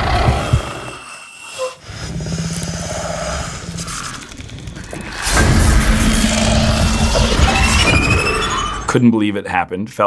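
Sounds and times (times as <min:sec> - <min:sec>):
low rumbling drone: 0:02.5 - 0:09.0.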